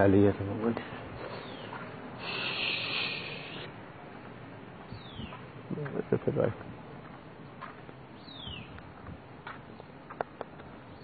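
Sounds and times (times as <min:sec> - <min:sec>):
faint outdoor background noise: 0:00.0 - 0:11.0
insect buzzing: 0:02.2 - 0:03.7.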